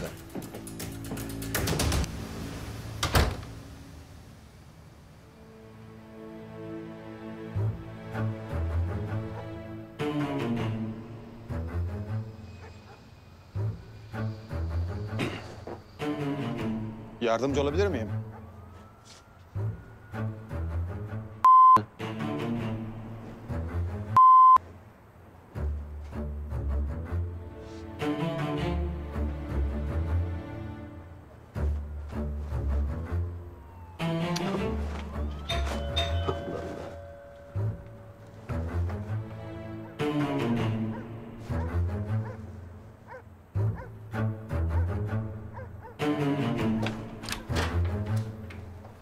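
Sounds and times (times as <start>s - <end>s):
soft background music: 0.0s - 49.0s
door shutting firmly: 3.0s - 3.6s, 46.6s - 48.7s
electronic censor bleeps: 21.4s - 21.9s, 24.2s - 24.6s.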